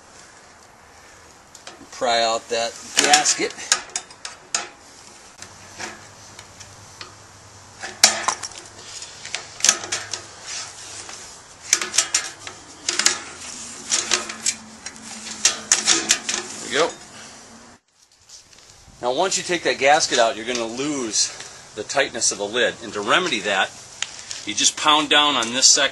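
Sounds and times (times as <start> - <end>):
screwdriver scraping metal lid: 11.7 - 17.1.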